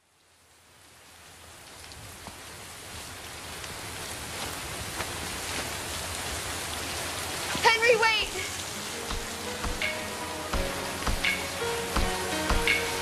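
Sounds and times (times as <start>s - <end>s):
rain-like hiss: 0.0s - 13.0s.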